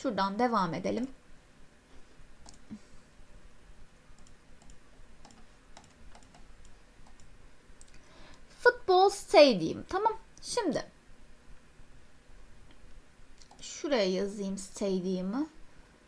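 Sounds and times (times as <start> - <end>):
computer mouse clicks: 2.4 - 2.8, 4.1 - 8.4, 13.4 - 13.7.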